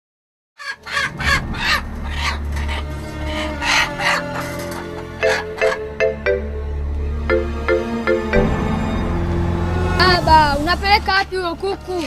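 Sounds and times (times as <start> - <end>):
chickens squawking: 0.6 - 6.1.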